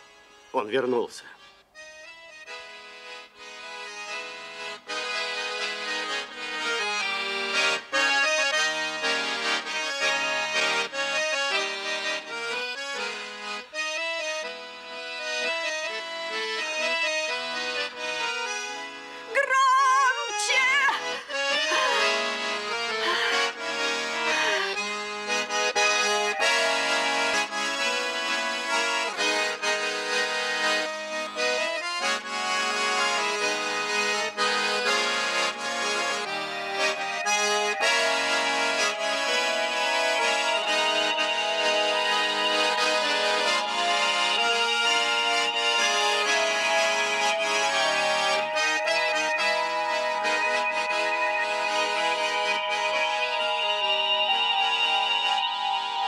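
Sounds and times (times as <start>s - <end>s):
accordion playing a melody: 0.0s - 56.0s.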